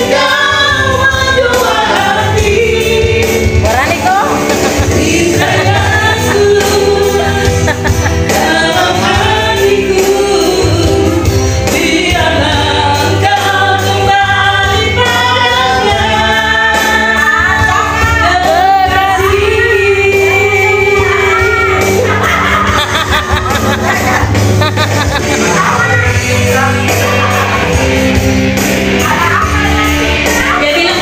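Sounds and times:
person singing into a microphone: 0:00.0 - 0:22.8
backing music track with bass: 0:00.0 - 0:31.0.

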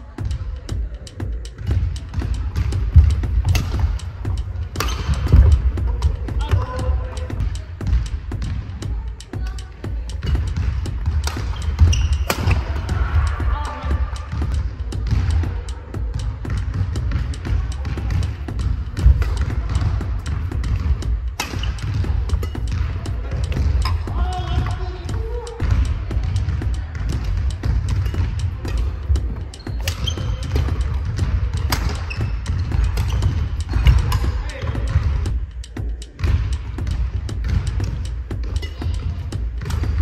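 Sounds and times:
background music: 0:00.0 - 0:40.0
rackets striking shuttlecock: 0:00.0 - 0:40.0.

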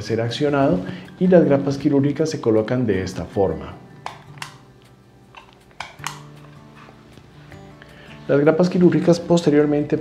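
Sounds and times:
soft background music: 0:00.0 - 0:10.0
skin stapler clicking: 0:04.0 - 0:06.6.

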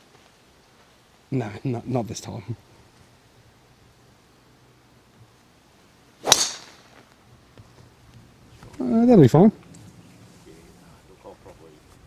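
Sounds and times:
golf club swishing: 0:06.2 - 0:07.0
sharp crack of club hitting ball: 0:06.2 - 0:07.0.

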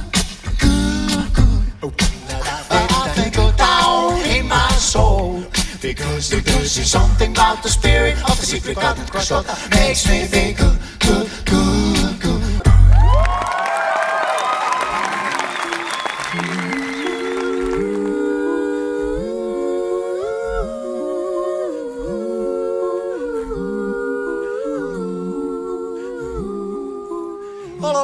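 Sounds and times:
swooping vocal glides: 0:14.9 - 0:28.0.

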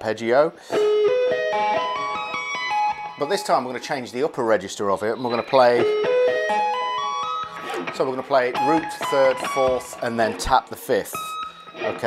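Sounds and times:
electric guitar arpeggio: 0:00.6 - 0:12.0.

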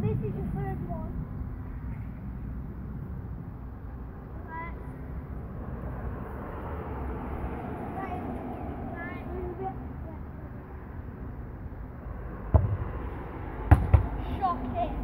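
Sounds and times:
low rumble of outdoor noise: 0:00.0 - 0:15.0
distant boys calling out: 0:07.4 - 0:11.0.

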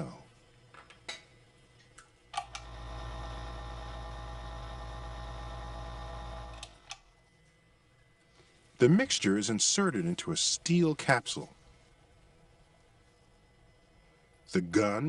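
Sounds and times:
machine hum: 0:02.4 - 0:14.8.

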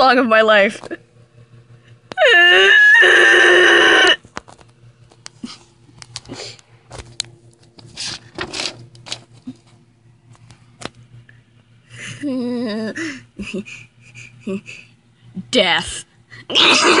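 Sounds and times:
person wailing: 0:02.2 - 0:04.2, 0:16.5 - 0:17.0.

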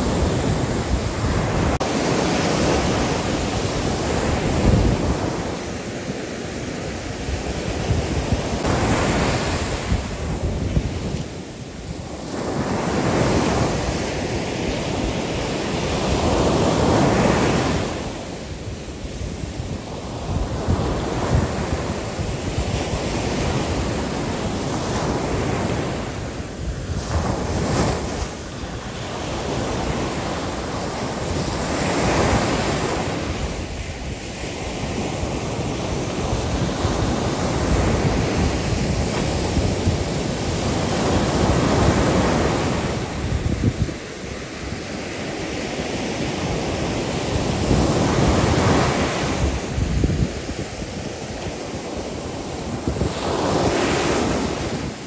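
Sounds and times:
ocean surf breaking on beach: 0:00.0 - 0:55.0.

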